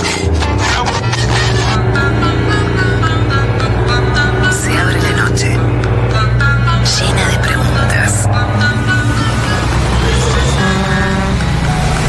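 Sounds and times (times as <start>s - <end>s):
music: 0.0s - 12.0s
vehicle engine rumble: 0.0s - 12.0s.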